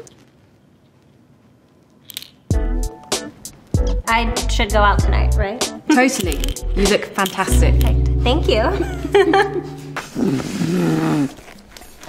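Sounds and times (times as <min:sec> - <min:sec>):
air blown into rubber glove: 0:09.7 - 0:11.5.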